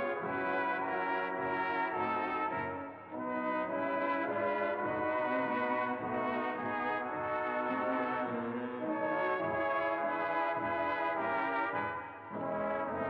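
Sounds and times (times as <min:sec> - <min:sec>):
reverberant sustained brass chords: 0:00.0 - 0:13.0.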